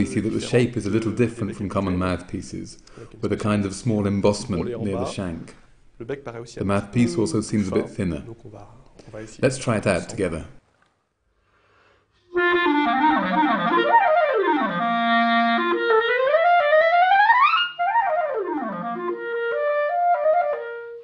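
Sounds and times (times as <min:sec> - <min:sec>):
clarinet playing fast scales: 0:12.3 - 0:21.0.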